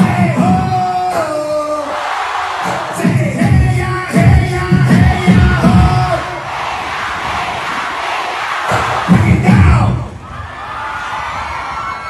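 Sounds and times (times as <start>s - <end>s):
heavy bass beats: 0.0s - 1.8s, 2.6s - 6.4s, 8.7s - 10.2s
crowd cheering and shouting: 0.0s - 12.0s.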